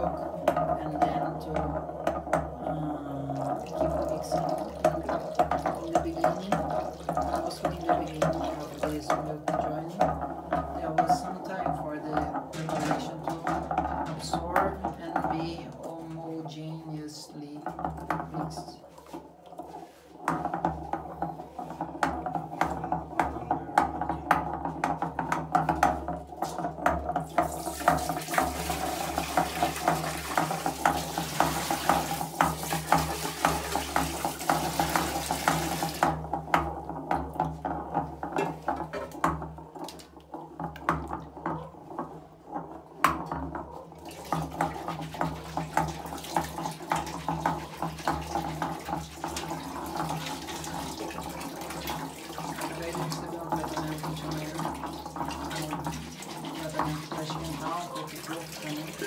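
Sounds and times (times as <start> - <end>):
pestle grinding in ceramic mortar: 17.8 - 57.8.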